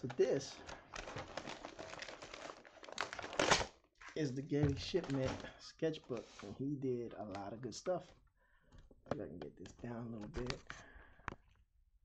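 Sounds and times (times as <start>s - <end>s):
paper envelope crinkling: 0.1s - 5.5s.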